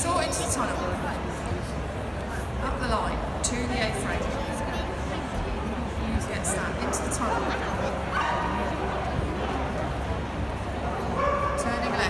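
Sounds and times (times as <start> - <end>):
large hall background noise: 0.0 - 12.0
dog barking: 11.2 - 11.6.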